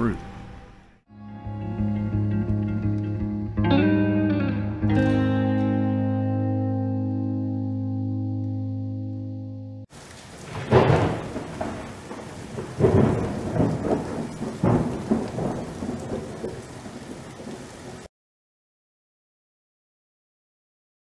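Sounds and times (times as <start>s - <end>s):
held guitar chord: 1.1s - 9.8s
steady rain: 9.9s - 18.1s
thunder rolling: 10.2s - 18.1s.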